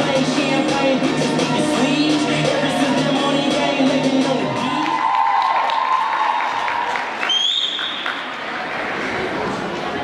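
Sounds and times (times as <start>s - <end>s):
dance music: 0.0s - 6.0s
audience applauding and cheering: 4.5s - 8.4s
shrill whistle: 7.2s - 8.2s.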